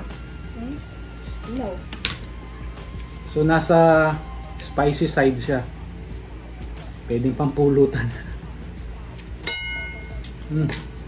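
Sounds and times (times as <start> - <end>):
tableware clinking: 9.4 - 10.4.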